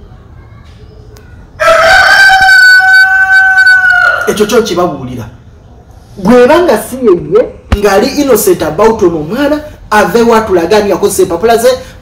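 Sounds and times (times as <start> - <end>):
rooster crowing: 1.6 - 4.7.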